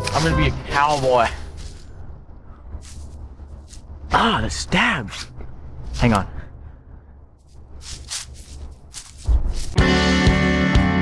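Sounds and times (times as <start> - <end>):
soft rustles: 2.7 - 4.0, 7.4 - 9.8.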